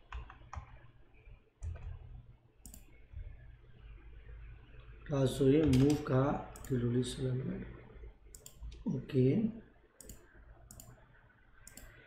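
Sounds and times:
low steady hum: 0:00.0 - 0:12.0
computer mouse clicks: 0:02.6 - 0:03.0, 0:05.6 - 0:06.8, 0:08.3 - 0:08.8, 0:10.0 - 0:12.0.

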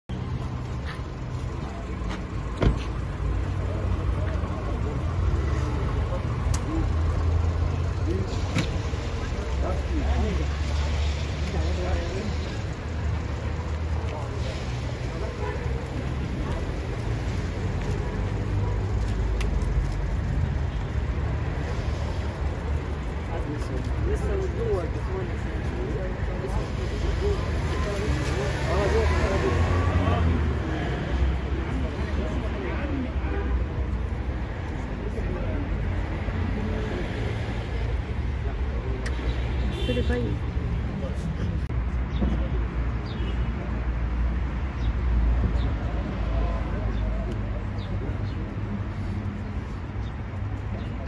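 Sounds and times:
street traffic rumble: 0:00.0 - 0:51.0.

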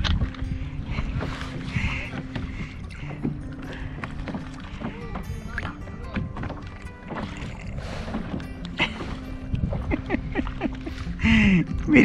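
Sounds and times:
small waves lapping against hull: 0:00.0 - 0:12.0
wind buffeting microphone: 0:00.0 - 0:12.0.

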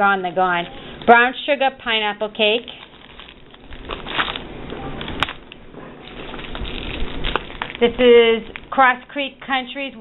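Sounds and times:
cellophane bags crinkling: 0:01.9 - 0:08.8.

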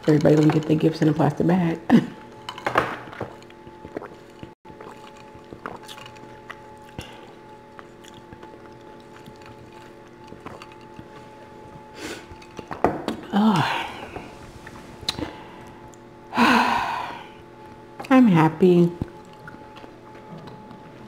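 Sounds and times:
slurp: 0:03.8 - 0:11.1.

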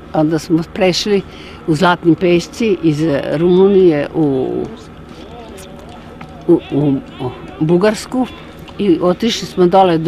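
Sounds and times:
elderly woman talking: 0:00.1 - 0:04.9, 0:06.5 - 0:10.0.

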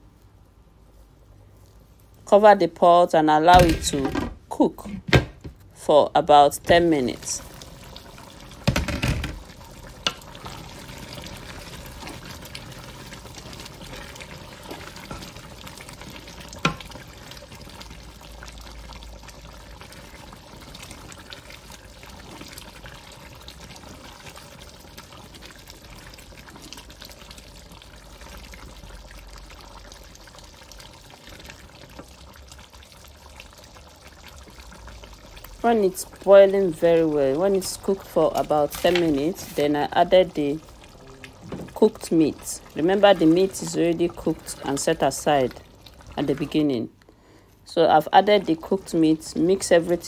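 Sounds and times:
soup boiling and bubbling: 0:00.0 - 0:04.2, 0:05.4 - 0:50.0
wooden spoon stirring pot: 0:06.6 - 0:18.6, 0:19.8 - 0:29.1, 0:36.0 - 0:46.8.

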